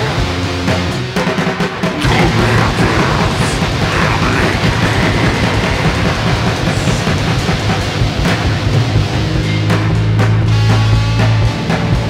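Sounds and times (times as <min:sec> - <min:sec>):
loud rock band music: 0:00.0 - 0:12.0.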